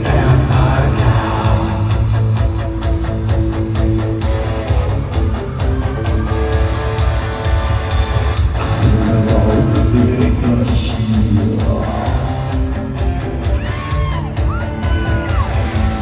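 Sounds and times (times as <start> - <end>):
rock band playing loudly: 0.0 - 16.0.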